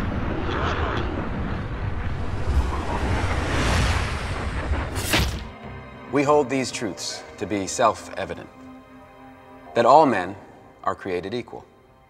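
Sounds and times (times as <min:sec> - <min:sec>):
brief whoosh: 0:00.0 - 0:05.6
deep rumbling drone: 0:00.0 - 0:06.1.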